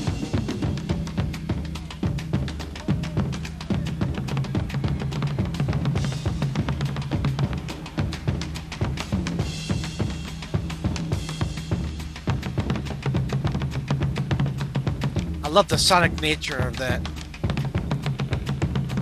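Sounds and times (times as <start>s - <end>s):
drum kit solo: 0.0s - 19.0s.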